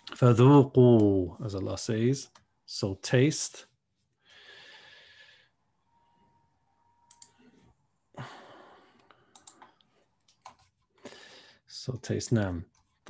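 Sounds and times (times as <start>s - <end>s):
computer clicks: 7.1s - 7.4s, 9.3s - 10.7s.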